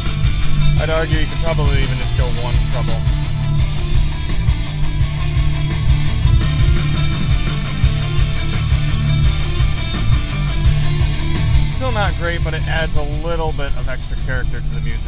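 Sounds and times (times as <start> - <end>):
rock music with electric guitar: 0.0 - 15.0.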